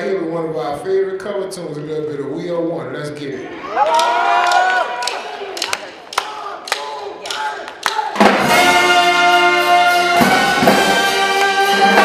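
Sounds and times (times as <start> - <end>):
brass band playing: 8.0 - 12.0.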